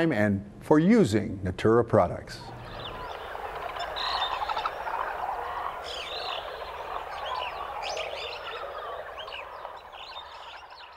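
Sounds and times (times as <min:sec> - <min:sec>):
birds chirping and calling: 0:02.4 - 0:10.9
frogs chorus: 0:02.5 - 0:10.9.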